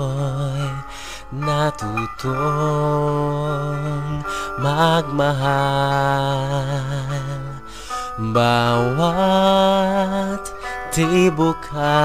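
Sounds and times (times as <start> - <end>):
karaoke backing track: 0.0 - 12.0
man singing a ballad: 0.0 - 12.0.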